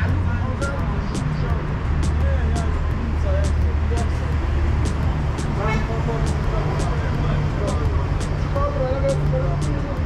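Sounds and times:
faint distant voices: 0.0s - 10.0s
low traffic rumble: 0.0s - 10.0s
car horn toot: 5.6s - 6.0s.

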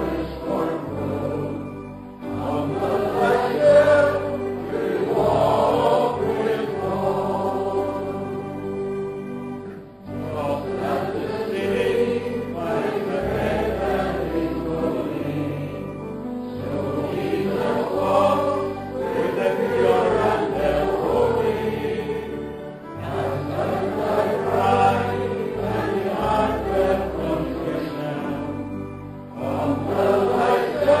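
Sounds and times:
congregation singing a hymn: 0.0s - 31.0s
low sustained accompaniment: 0.0s - 31.0s.

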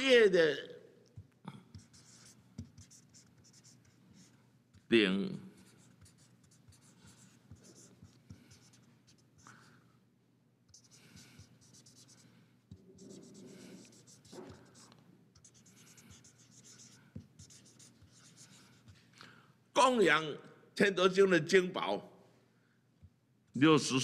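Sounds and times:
marker scratching on paper: 1.2s - 4.9s, 5.6s - 9.7s, 10.7s - 19.1s.

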